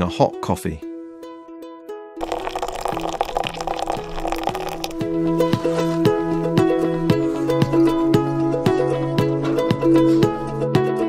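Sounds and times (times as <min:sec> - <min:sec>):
plucked string music: 0:00.0 - 0:11.0
water splashing into glass pot: 0:02.2 - 0:05.1.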